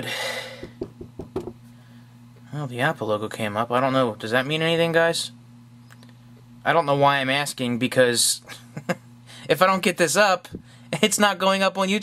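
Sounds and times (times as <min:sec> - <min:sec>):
knuckles knocking on wood: 0:00.6 - 0:01.6.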